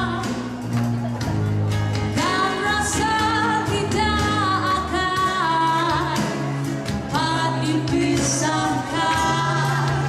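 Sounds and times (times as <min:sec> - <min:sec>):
live band playing pop ballad: 0:00.0 - 0:10.0
woman singing wordless held notes: 0:07.2 - 0:10.0.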